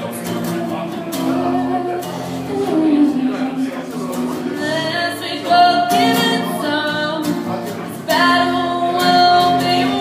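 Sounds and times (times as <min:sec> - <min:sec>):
strummed acoustic guitars: 0:00.0 - 0:10.0
woman singing: 0:00.4 - 0:03.7, 0:04.5 - 0:07.4, 0:08.0 - 0:10.0.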